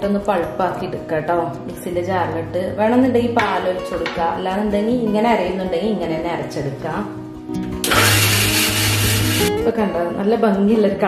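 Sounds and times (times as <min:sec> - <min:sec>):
mixer grinder blending: 0:07.8 - 0:09.5.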